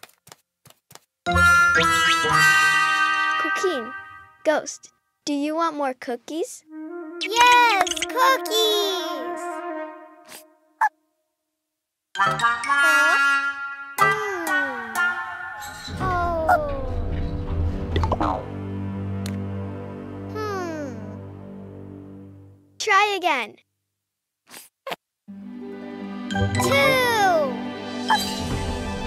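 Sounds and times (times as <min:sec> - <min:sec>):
light children's music: 0:01.3 - 0:04.5, 0:06.6 - 0:10.7, 0:12.2 - 0:22.5, 0:25.3 - 0:29.0
cartoon baby voice falling ohh: 0:20.4 - 0:21.2, 0:26.6 - 0:27.6.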